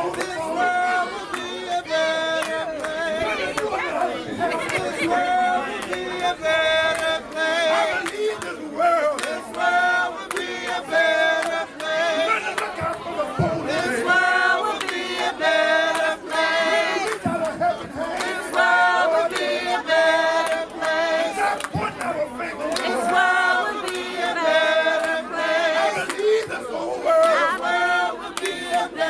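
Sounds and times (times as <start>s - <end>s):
steady hand clapping: 0.0s - 3.8s, 4.5s - 29.0s
crowd singing unaccompanied: 0.0s - 29.0s.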